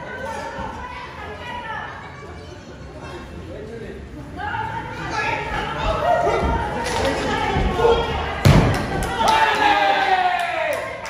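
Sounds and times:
people shouting: 4.4 - 10.8.

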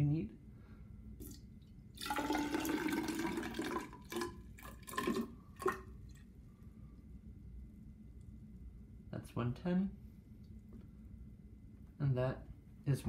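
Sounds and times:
water pouring into cylinder: 1.2 - 6.1.

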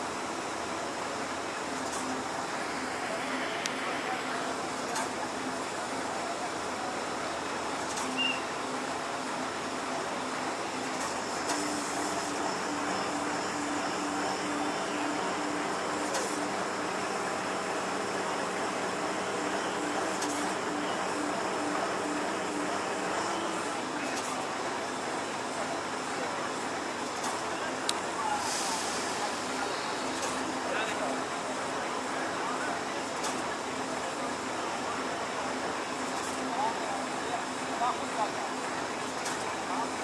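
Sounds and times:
heavy machinery running: 0.1 - 40.0.

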